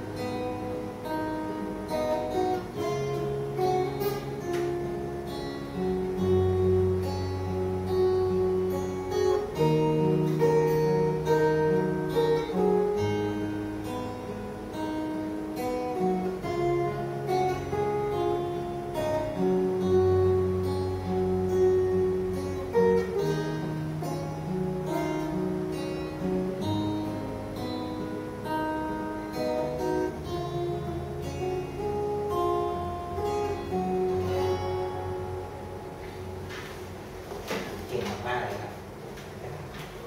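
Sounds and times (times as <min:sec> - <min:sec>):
acoustic guitars playing: 0:00.0 - 0:40.0.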